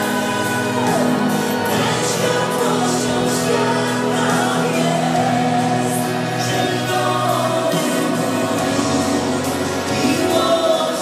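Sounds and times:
choir singing slow song: 0.0 - 11.0
musical accompaniment: 0.0 - 11.0.

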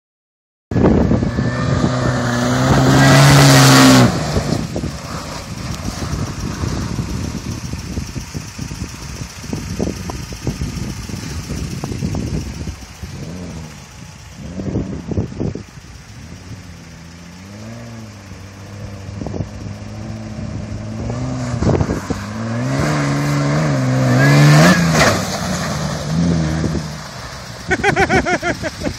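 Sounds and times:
engine revving hard: 1.2 - 7.5, 19.9 - 27.1.

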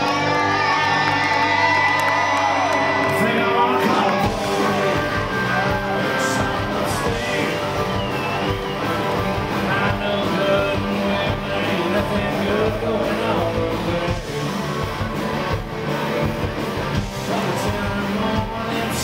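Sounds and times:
rock band playing live: 0.0 - 19.0
man singing: 2.9 - 15.2, 16.9 - 19.0.

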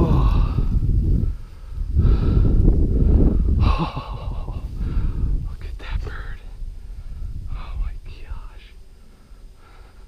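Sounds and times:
man breathing heavily: 0.0 - 10.0
wind rumbling on microphone: 0.0 - 10.0.

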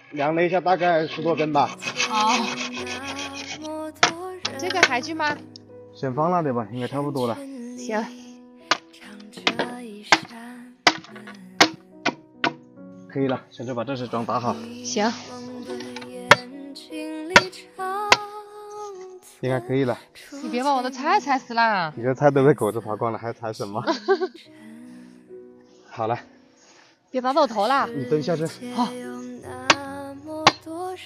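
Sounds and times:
background music with held notes: 0.3 - 31.0.

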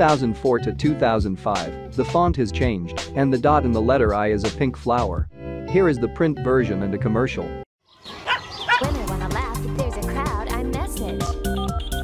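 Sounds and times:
small dog yipping: 8.1 - 8.9
upbeat commercial jingle: 8.8 - 12.0.

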